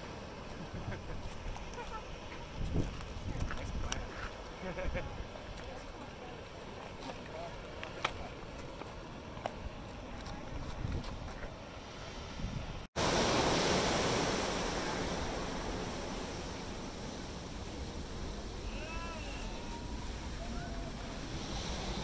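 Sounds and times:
ocean waves breaking: 0.0s - 2.6s, 11.5s - 22.0s.

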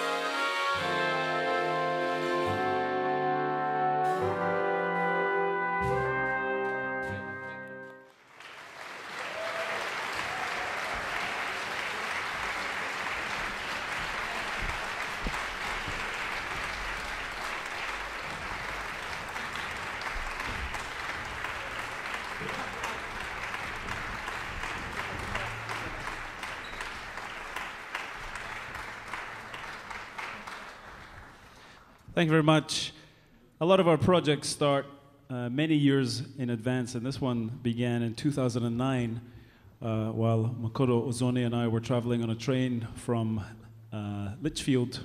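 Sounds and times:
audience applauding: 8.0s - 32.1s.

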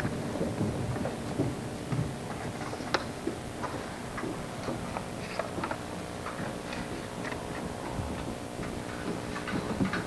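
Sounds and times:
faint steady hum: 0.0s - 10.0s
book pages rustling: 4.9s - 7.8s.

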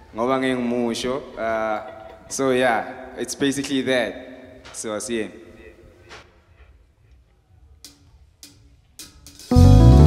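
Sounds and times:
rock band playing chord: 9.5s - 10.0s.

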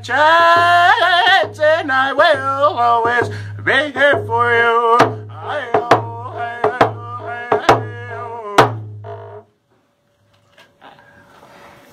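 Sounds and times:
man singing: 0.0s - 8.9s.

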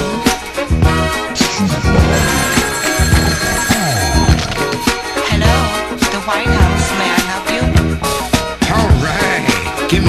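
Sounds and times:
telephone bell ringing: 2.0s - 7.4s.

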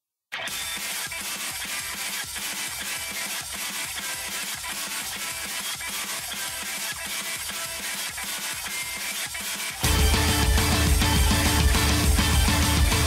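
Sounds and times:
electronic instrumental music: 0.4s - 13.0s.

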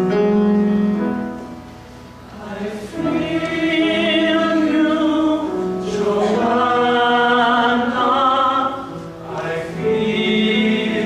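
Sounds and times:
choir singing chords: 2.2s - 11.0s.

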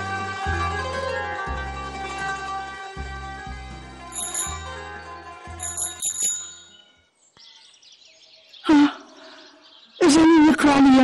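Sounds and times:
plucked-string music: 0.0s - 6.8s
bicycle bell ringing: 4.1s - 4.9s, 5.6s - 7.0s.

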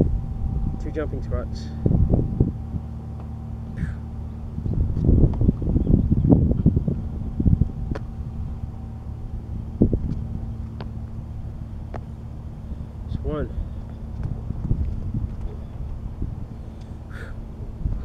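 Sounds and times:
steady low hum: 0.0s - 18.0s
wind rumble on microphone: 0.0s - 18.0s.

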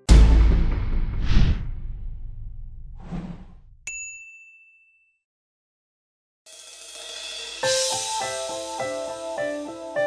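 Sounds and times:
short whoosh: 1.0s - 3.8s.

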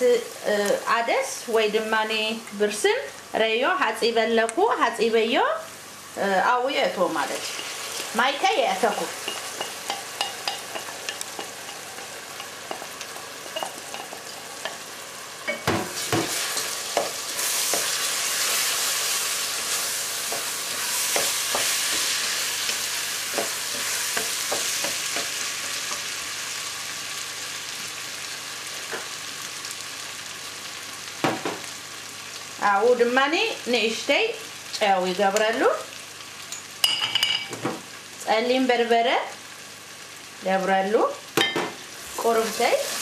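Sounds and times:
lentils sizzling in a pot: 0.0s - 43.0s.

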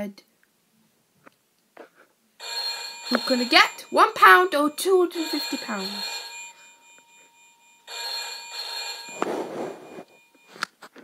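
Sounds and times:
electronic telephone ring: 2.4s - 10.6s.

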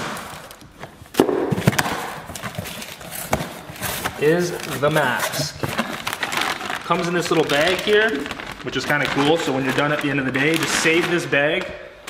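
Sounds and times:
cardboard rustling and scraping: 0.3s - 11.4s.

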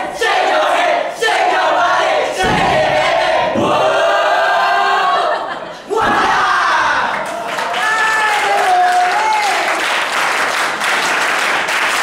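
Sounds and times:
young voices shouting a cheer: 0.0s - 9.8s.

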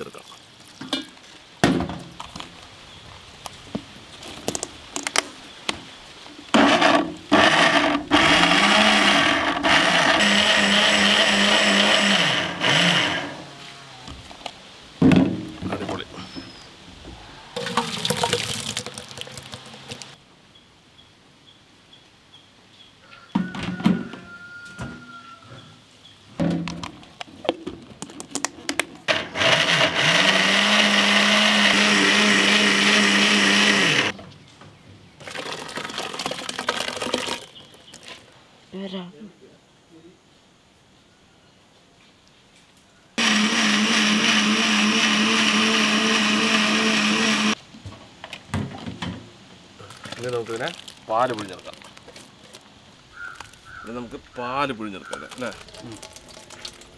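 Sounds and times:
mixer grinder motor whining: 6.6s - 13.5s, 29.1s - 34.1s, 43.2s - 47.6s.

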